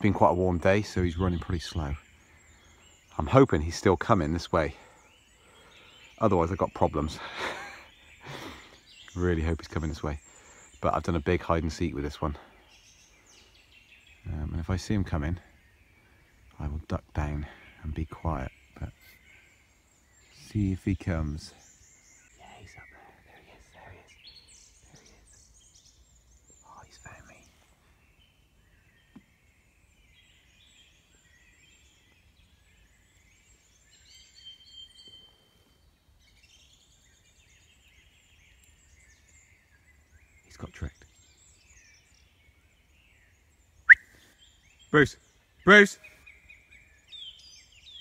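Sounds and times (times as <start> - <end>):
birds chirping and singing: 0.0 - 48.0
whistled note: 43.9 - 44.1.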